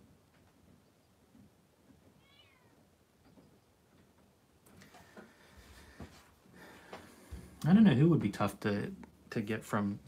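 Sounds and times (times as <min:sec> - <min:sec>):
faint animal call: 0:02.1 - 0:03.7.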